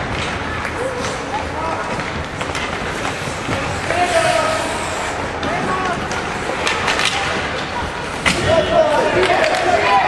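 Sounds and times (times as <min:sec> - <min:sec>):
skates scraping ice: 0:00.0 - 0:10.0.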